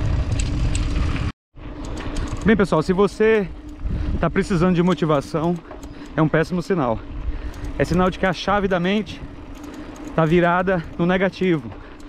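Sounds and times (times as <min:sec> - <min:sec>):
bike tyres rumbling on dirt: 0:00.0 - 0:05.3
wind buffeting microphone: 0:02.1 - 0:06.2.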